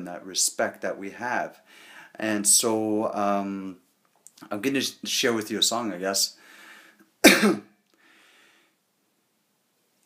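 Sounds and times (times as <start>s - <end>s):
faint breath: 1.6s - 2.2s, 6.4s - 7.1s, 7.9s - 8.9s
man coughing: 7.2s - 7.8s.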